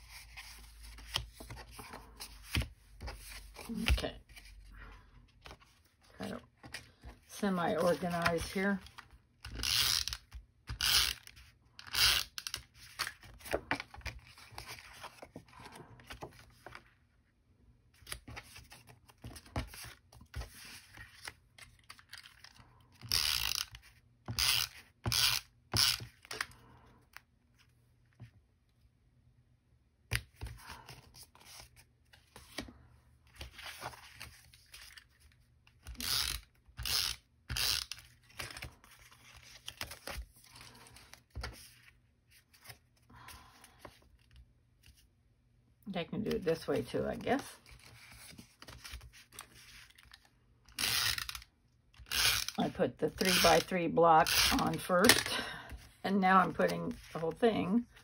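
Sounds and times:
paper being handled and slid: 0.0s - 4.7s, 5.3s - 9.0s, 18.0s - 22.4s, 33.3s - 36.0s.

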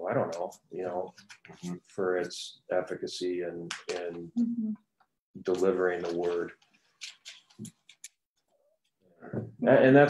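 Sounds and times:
pages rustling: 5.5s - 8.2s.

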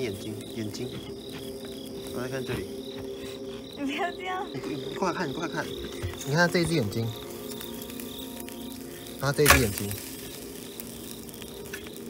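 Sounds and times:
insects chirping: 0.0s - 12.0s
low steady drone: 0.0s - 12.0s.

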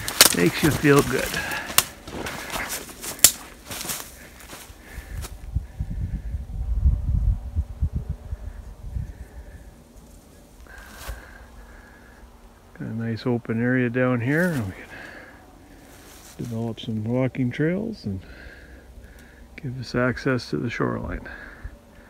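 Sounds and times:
footsteps: 0.0s - 5.4s
dry grass crackling and rustling: 0.0s - 5.8s, 8.4s - 17.6s
wind rumble on microphone: 4.6s - 11.4s.

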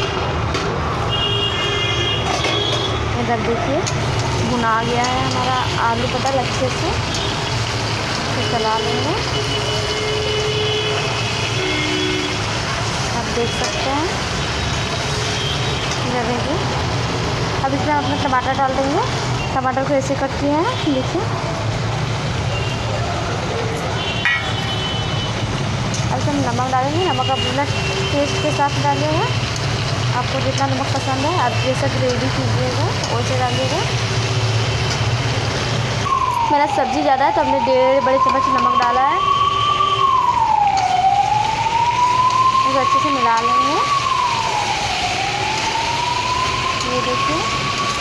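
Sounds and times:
vegetables frying in oil: 0.0s - 39.2s, 39.8s - 48.0s
siren wailing: 35.9s - 48.0s.

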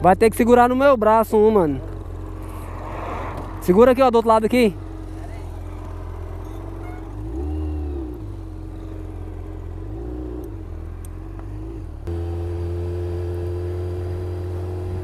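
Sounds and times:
motorcycle engine revving: 1.5s - 15.0s.

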